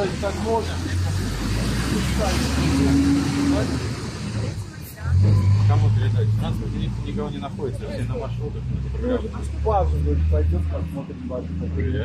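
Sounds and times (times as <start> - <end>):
faint voices: 0.0 - 12.0
road noise: 0.0 - 12.0
vehicle engine running: 0.0 - 12.0.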